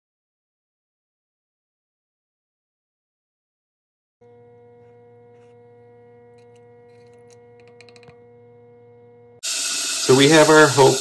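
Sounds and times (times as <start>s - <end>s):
tumbler water rushing hiss: 9.4s - 11.0s.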